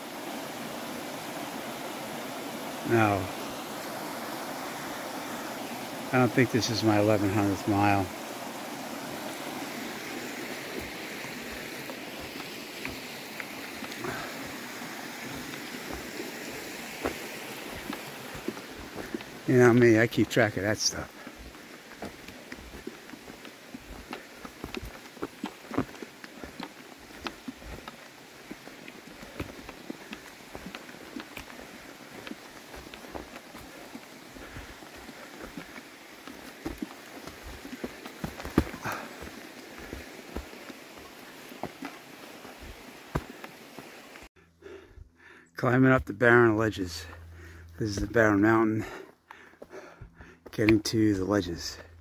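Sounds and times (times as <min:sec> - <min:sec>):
steady hiss: 0:00.0 - 0:44.3
footsteps on forest trail: 0:00.0 - 0:52.0.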